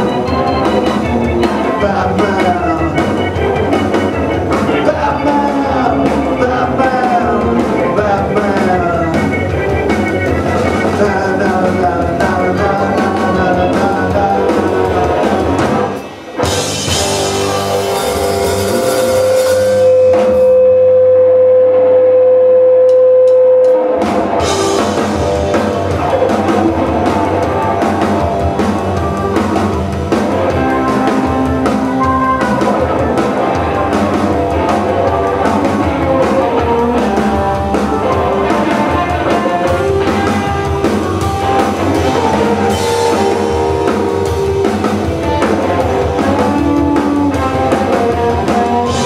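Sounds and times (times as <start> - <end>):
organ: 0.0 - 20.4
drum kit: 0.0 - 20.9, 22.9 - 49.0
electric guitars: 0.0 - 49.0.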